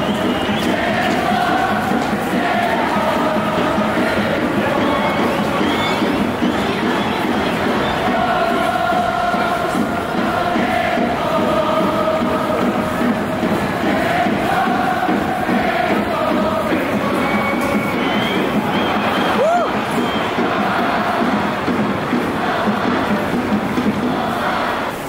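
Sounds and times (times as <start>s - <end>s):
crowd chanting in unison: 0.0s - 25.0s
crowd noise: 0.0s - 25.0s.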